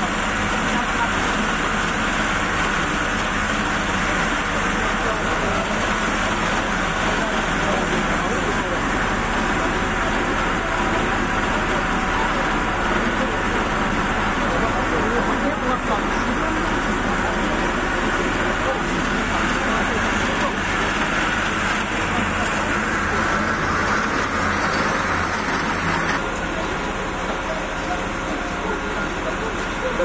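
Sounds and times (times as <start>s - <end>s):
fire engine engine droning: 0.0s - 30.0s
people talking indistinctly: 0.1s - 30.0s.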